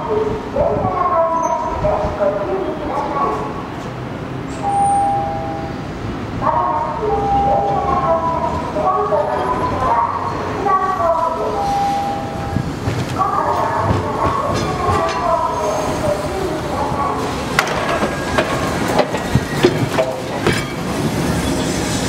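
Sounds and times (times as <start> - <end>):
streetcar running over curved track: 0.0 - 22.0.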